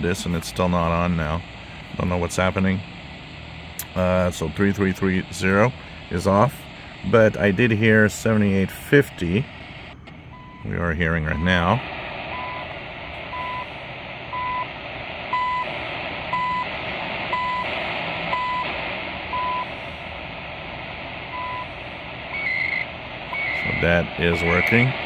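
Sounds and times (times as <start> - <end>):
shortwave static and hiss: 0.0 - 25.0
time signal tone beeps: 12.3 - 12.7, 13.3 - 13.7, 14.3 - 14.7, 15.3 - 15.7, 16.3 - 16.7, 17.3 - 17.7, 18.3 - 18.7, 19.3 - 19.7, 21.3 - 23.8
high-pitched data bursts: 21.3 - 25.0.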